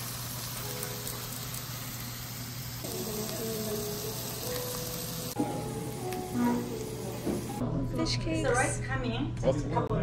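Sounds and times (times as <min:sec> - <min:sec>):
meat sizzling on a griddle: 0:00.0 - 0:07.5
soft background music: 0:02.8 - 0:10.0.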